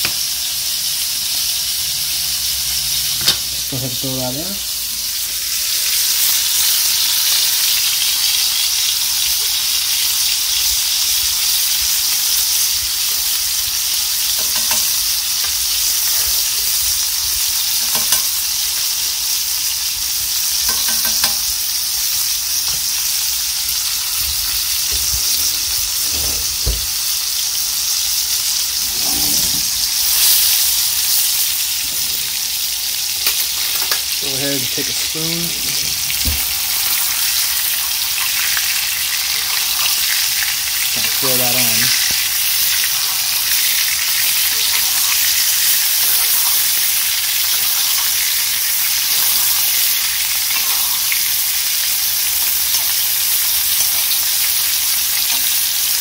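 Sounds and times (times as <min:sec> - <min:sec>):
steak sizzling in skillet: 0:00.0 - 0:56.0.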